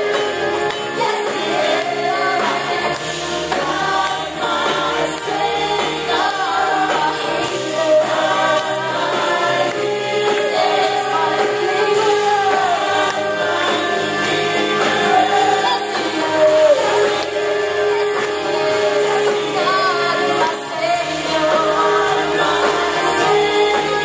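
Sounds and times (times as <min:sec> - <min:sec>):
group singing gospel song amplified: 0:00.0 - 0:24.0.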